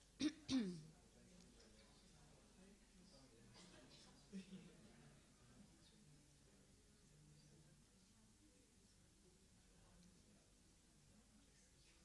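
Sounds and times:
low room noise: 0:00.0 - 0:12.0
person clearing throat: 0:00.2 - 0:00.8.

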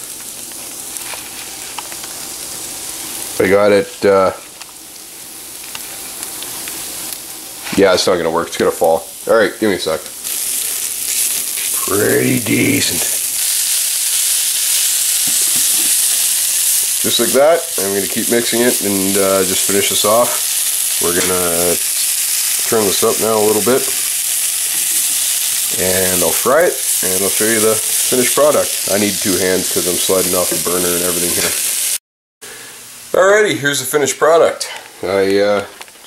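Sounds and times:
chicken sizzling in a pan: 0:00.0 - 0:35.6.

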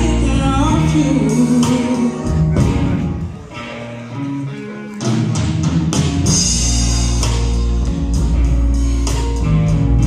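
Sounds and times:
bass guitar: 0:00.0 - 0:10.0
electric guitar chords: 0:00.0 - 0:10.0
keyboard: 0:00.0 - 0:10.0.

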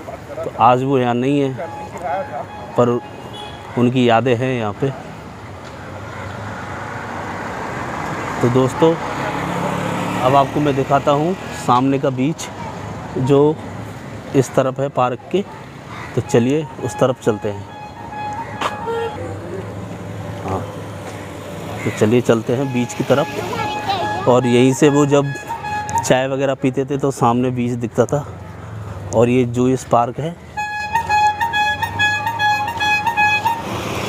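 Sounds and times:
road traffic: 0:00.0 - 0:34.0
motor vehicle passing: 0:01.2 - 0:14.7, 0:17.4 - 0:26.1, 0:30.4 - 0:34.0.

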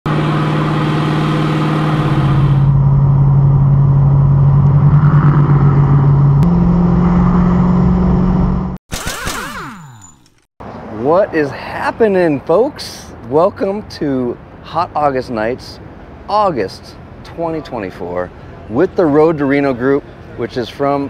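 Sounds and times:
car engine droning at cruise: 0:00.1 - 0:08.8
wind and road noise: 0:00.1 - 0:21.0.

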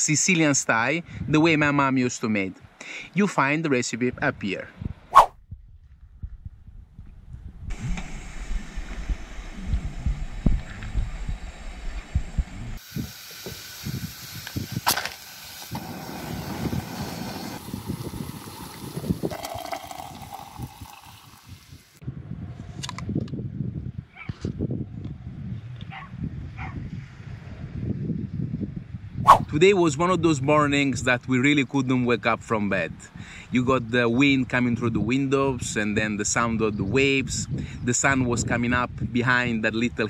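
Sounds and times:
pot of water boiling: 0:12.8 - 0:22.0.

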